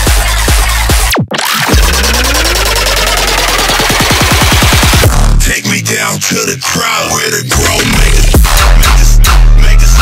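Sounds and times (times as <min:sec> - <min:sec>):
rapid drum hits: 0:00.0 - 0:05.4
rising synth sweep: 0:01.5 - 0:05.1
held low bass: 0:05.0 - 0:05.6.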